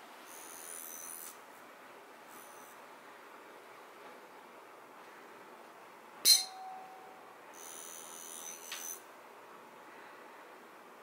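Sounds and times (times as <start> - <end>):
tuning fork ringing: 6.2 - 9.0.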